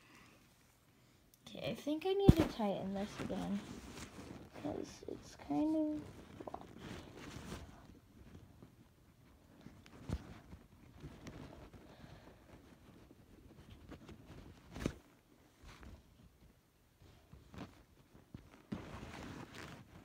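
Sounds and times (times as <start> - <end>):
faint rustling handling noise: 0.0 - 20.0.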